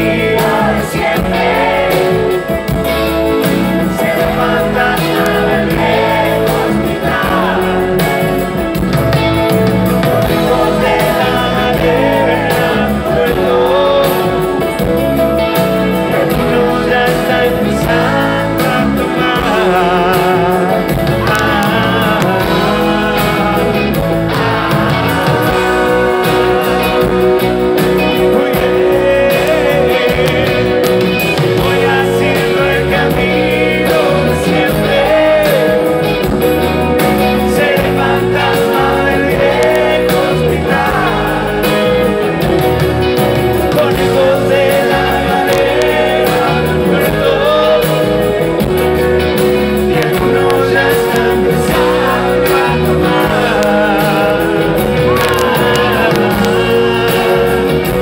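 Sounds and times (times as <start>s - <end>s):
acoustic guitar: 0.0s - 58.0s
bending lead guitar line: 0.0s - 58.0s
drum beat and cymbals: 0.0s - 58.0s
electric guitar: 0.0s - 58.0s
live rock band playing: 0.0s - 58.0s.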